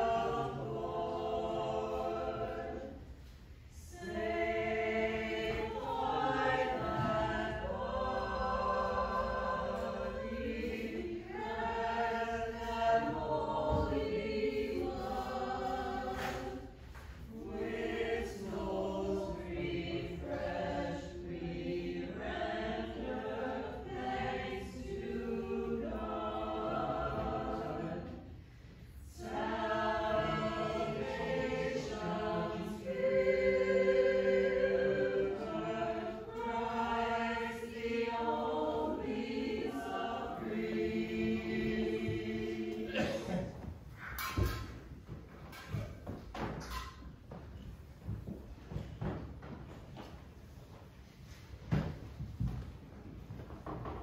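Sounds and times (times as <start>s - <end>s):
choir singing a hymn: 0.0s - 49.3s.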